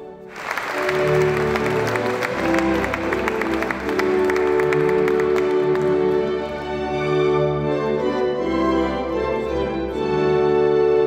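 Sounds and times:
instrumental music with held notes: 0:00.0 - 0:11.0
audience applauding: 0:00.1 - 0:07.2.

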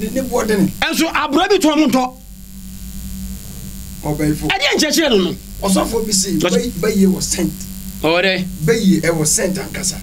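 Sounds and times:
low electrical hum: 0:00.0 - 0:10.0
sound system hiss: 0:00.0 - 0:10.0.

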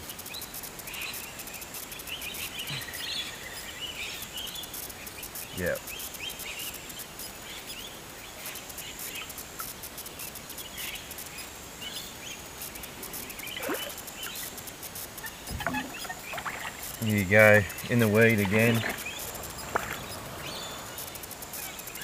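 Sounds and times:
bird chirps: 0:15.2 - 0:22.0.

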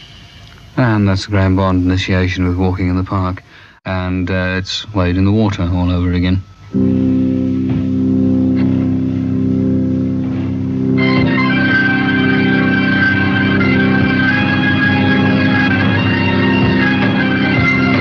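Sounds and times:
organ sustained chord: 0:06.0 - 0:18.0
band playing: 0:06.8 - 0:18.0.

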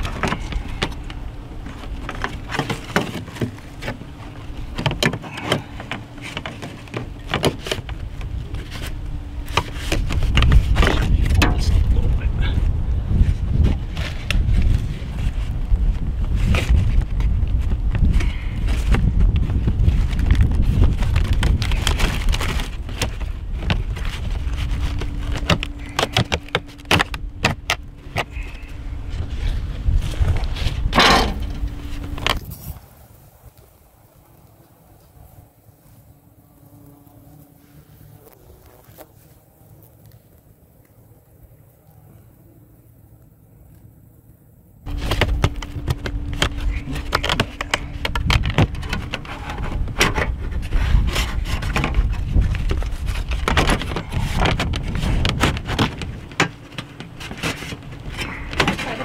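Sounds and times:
steady low rumble: 0:00.0 - 0:59.0
vinyl panels rattling and clicking: 0:44.9 - 0:59.0.

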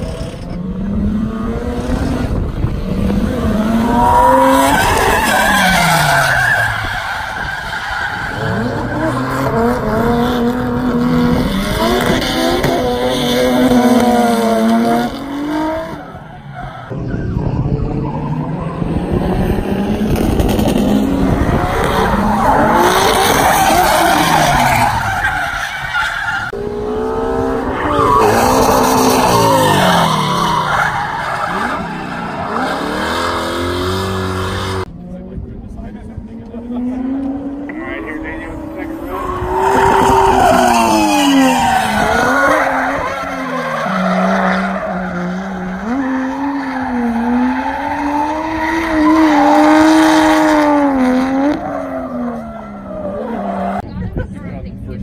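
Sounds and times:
car engines revving: 0:00.0 - 0:55.0.

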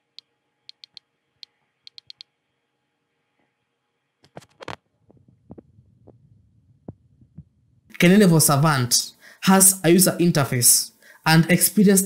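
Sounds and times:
faint low hum: 0:00.0 - 0:12.0
soft sharp clicks: 0:00.2 - 0:02.3.

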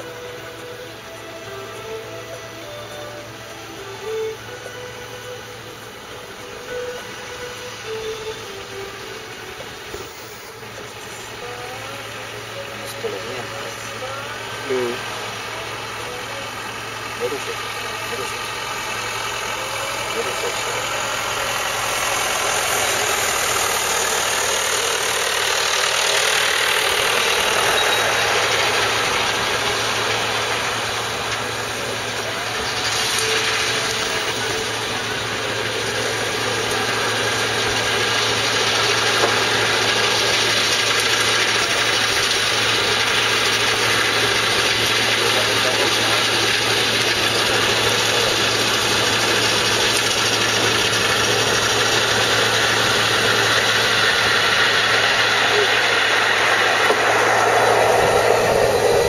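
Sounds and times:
combine harvester engine and machinery: 0:00.0 - 0:59.0.

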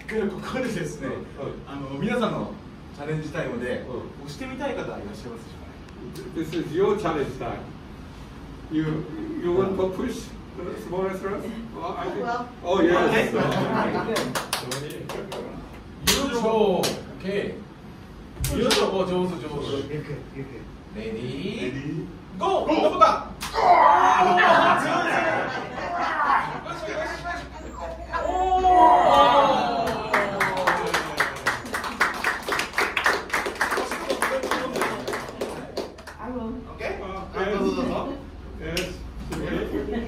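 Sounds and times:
sharp hand claps: 0:14.1 - 0:17.1, 0:18.4 - 0:18.9, 0:29.8 - 0:36.2.

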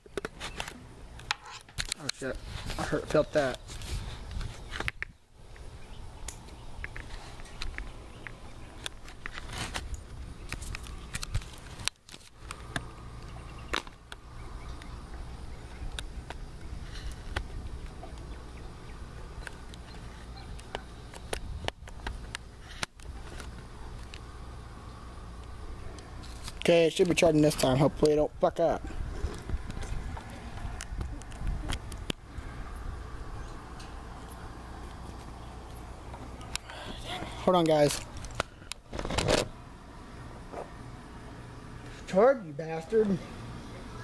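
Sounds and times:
steady low rumble: 0:02.2 - 0:42.1.

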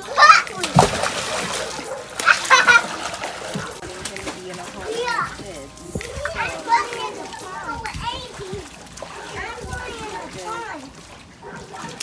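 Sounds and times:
children squealing and shouting: 0:00.0 - 0:00.6
water splashing: 0:00.0 - 0:12.0.

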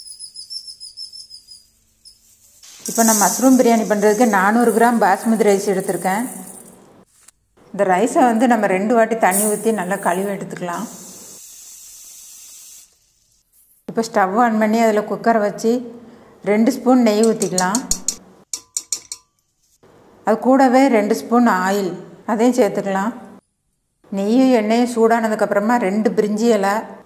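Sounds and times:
tap water running into pot: 0:02.6 - 0:06.8.

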